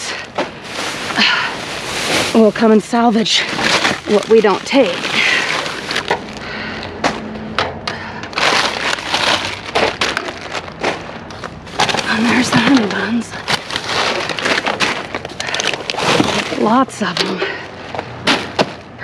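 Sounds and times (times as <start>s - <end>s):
plastic bags crinkling: 0.0s - 7.0s, 8.3s - 17.3s
cardboard boxes shifting: 0.0s - 7.3s, 8.3s - 18.9s.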